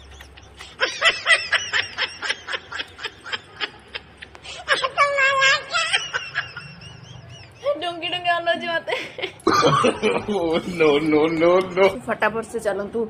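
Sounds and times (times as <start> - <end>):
person giggling: 8.9 - 11.0.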